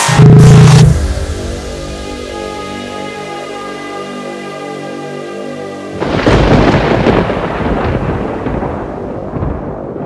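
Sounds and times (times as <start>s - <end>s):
music with held tones: 0.0s - 9.8s
thunder clap rumbling: 6.0s - 10.0s.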